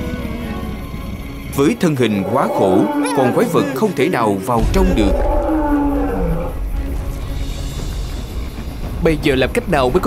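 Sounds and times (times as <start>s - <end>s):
background music: 0.0s - 10.0s
cartoon monster roar: 2.1s - 4.0s, 4.9s - 6.6s
deep rumble: 4.6s - 10.0s.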